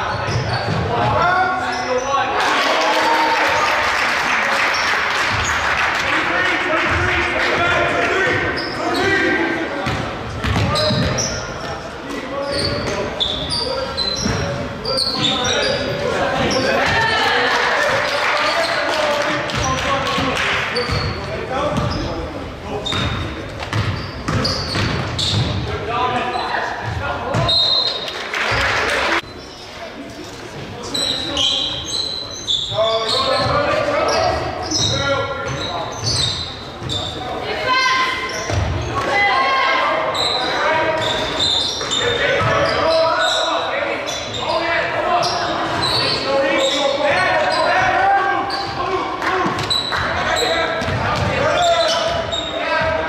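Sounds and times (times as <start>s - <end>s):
sneaker squeaks: 0.0s - 2.3s, 4.6s - 5.7s, 8.3s - 17.3s, 19.5s - 28.2s, 29.2s - 29.8s, 30.5s - 53.0s
people shouting and talking: 0.0s - 53.0s.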